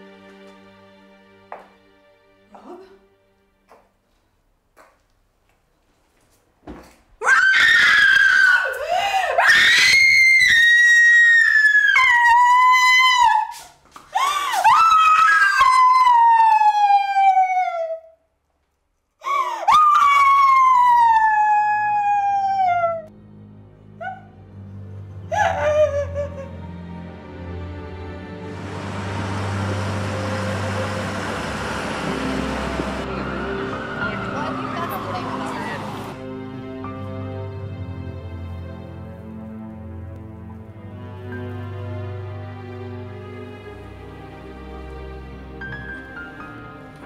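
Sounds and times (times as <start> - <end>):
woman screaming: 7.2 - 13.6, 14.2 - 18.2, 19.4 - 23.1, 25.3 - 26.5
low music drone: 23.1 - 47.0
woman crying out: 25.3 - 26.5.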